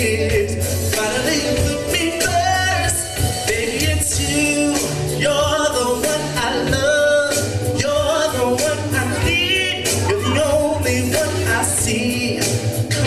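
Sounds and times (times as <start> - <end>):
man singing into a microphone: 0.0 - 13.0
pop backing track with bass: 0.0 - 13.0.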